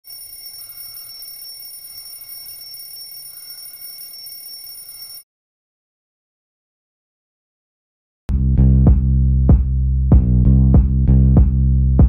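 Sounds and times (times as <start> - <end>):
phone alarm high-pitched tone: 0.0 - 5.2.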